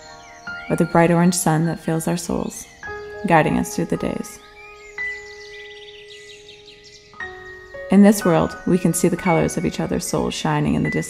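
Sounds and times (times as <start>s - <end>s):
slow sad piano music: 0.0s - 11.0s.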